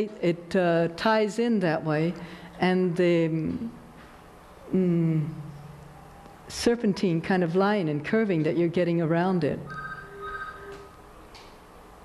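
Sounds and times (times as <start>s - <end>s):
electronic telephone ringing: 9.7s - 10.9s.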